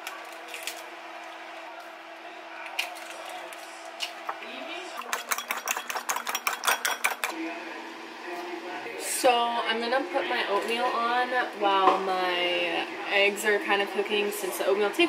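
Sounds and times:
fork beating eggs in bowl: 4.9s - 7.4s
eggs cracked against ceramic bowl: 5.0s - 7.4s.

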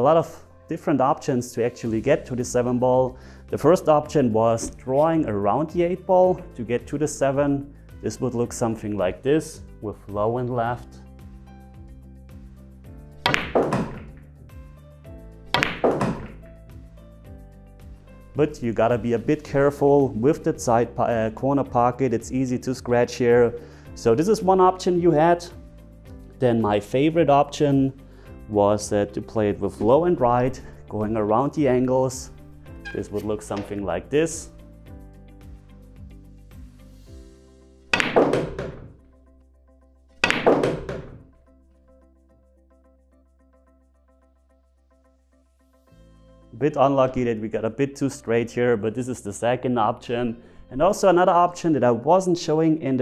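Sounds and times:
cue striking cue ball: 13.2s - 14.2s, 15.6s - 16.4s, 38.0s - 39.0s, 40.2s - 41.3s
pool balls clacking: 13.3s - 14.2s, 15.6s - 16.4s, 32.8s - 33.9s, 38.0s - 39.0s, 40.2s - 41.3s.

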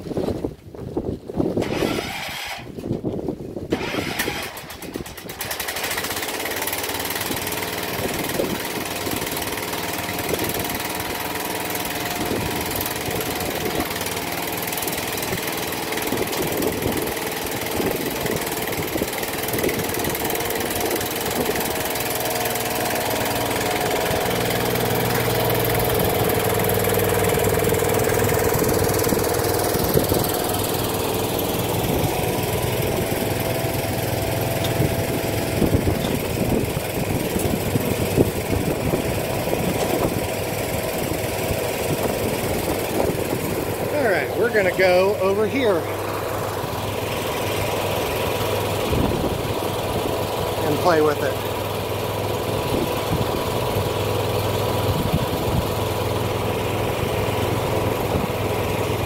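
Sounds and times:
garden tractor engine running: 0.0s - 59.0s.

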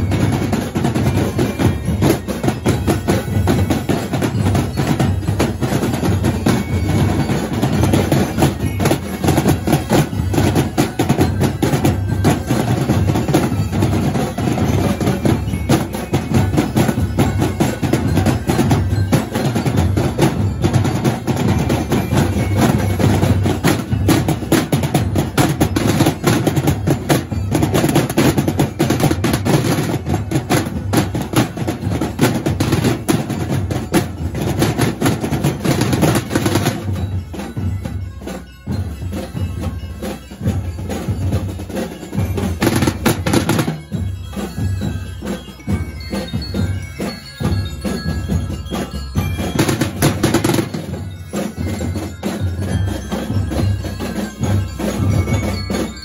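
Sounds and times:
marching drums playing: 0.0s - 56.0s.

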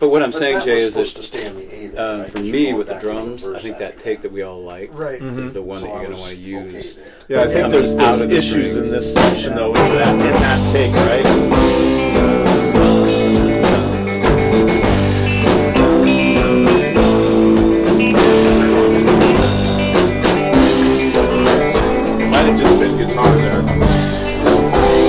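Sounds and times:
rock band playing: 7.4s - 25.0s.

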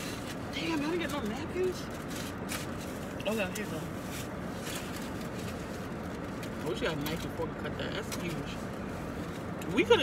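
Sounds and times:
car interior hum: 0.0s - 10.0s.

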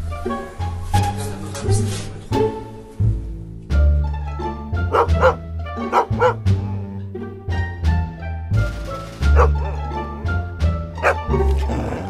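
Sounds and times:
background music: 0.0s - 12.0s
dog barking: 4.9s - 6.4s, 9.3s - 9.9s, 11.0s - 11.5s.

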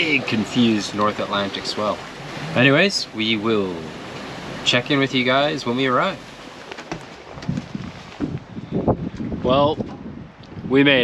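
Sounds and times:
dull low bumps: 0.0s - 10.7s
wind buffeting microphone: 0.0s - 11.0s.

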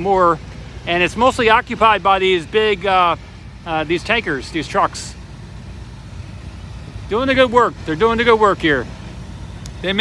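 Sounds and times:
vehicle engines rumbling: 0.0s - 10.0s.

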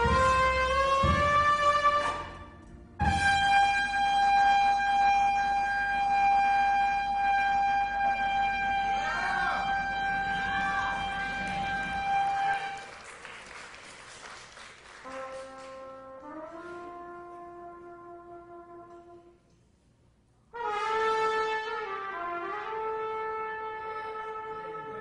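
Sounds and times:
trumpet holding long note: 0.0s - 12.9s, 15.0s - 19.4s, 20.5s - 25.0s.

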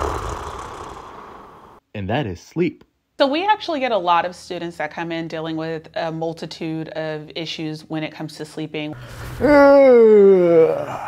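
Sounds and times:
person snoring: 0.0s - 1.8s.

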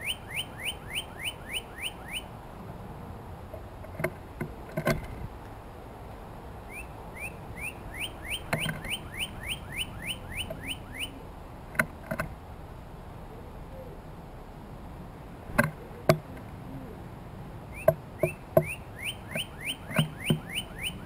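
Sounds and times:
bird singing rising whistles: 0.0s - 2.3s, 6.7s - 11.2s, 17.7s - 21.0s.

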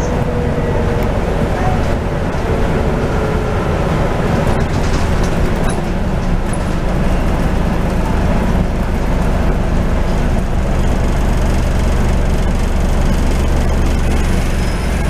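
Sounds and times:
bus diesel engine hum: 0.0s - 15.0s
road and body noise: 0.0s - 15.0s.

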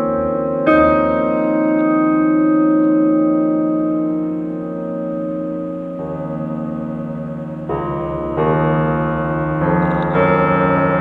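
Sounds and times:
piano chord ringing: 0.0s - 11.0s.

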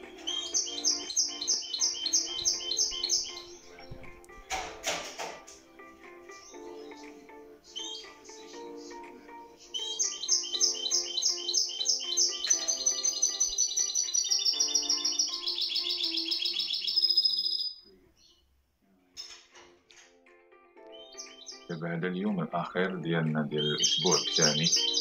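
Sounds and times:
finch singing: 0.0s - 4.8s, 6.0s - 18.4s, 20.8s - 25.0s
soft background music: 0.0s - 25.0s.

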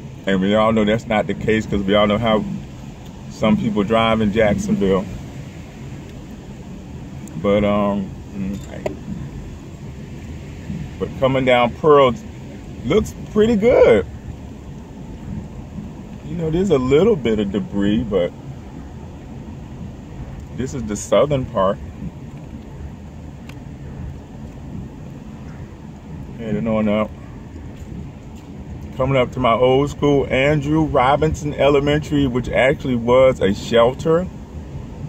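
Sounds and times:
car driving low rumble: 0.0s - 35.0s.

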